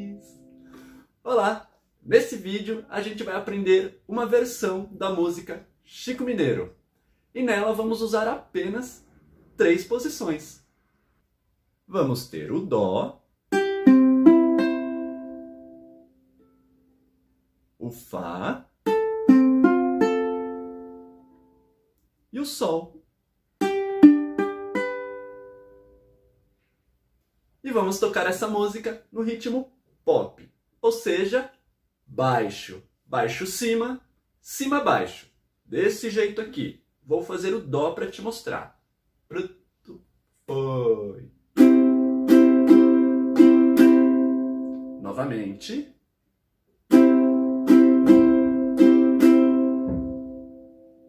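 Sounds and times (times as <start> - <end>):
ukulele strumming a chord: 13.5 - 16.0, 41.6 - 45.0, 46.9 - 50.9.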